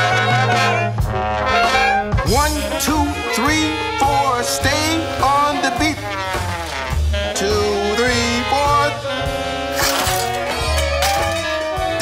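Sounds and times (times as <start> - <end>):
jazz band playing swing: 0.0 - 12.0.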